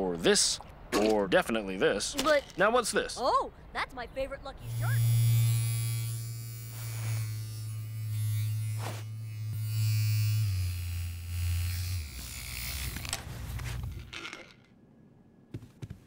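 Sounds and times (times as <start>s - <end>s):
electric massager buzzing: 4.6s - 14.1s.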